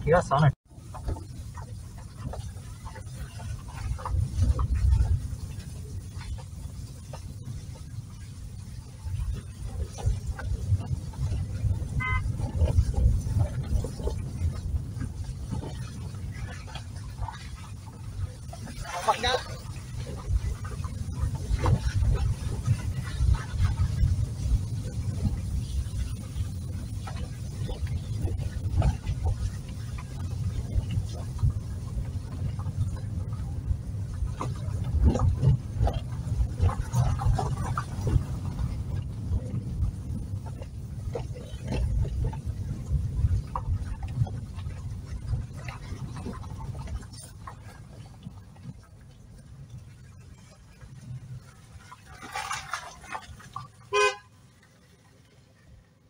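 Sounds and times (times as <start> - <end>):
car rumbling on dirt road: 0.0 - 56.0
car horn toot: 12.0 - 12.4, 53.9 - 54.4.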